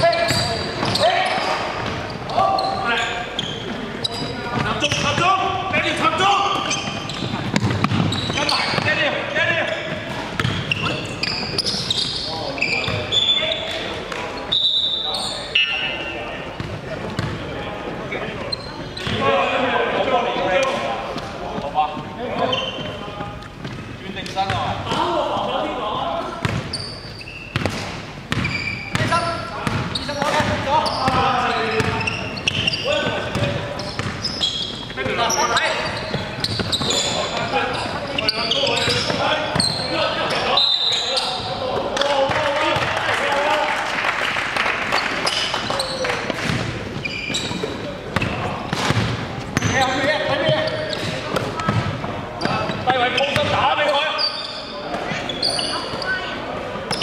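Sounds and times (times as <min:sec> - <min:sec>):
people calling out and talking: 0:00.0 - 0:27.6, 0:28.2 - 0:43.9
basketball bouncing on hardwood: 0:07.2 - 0:08.9.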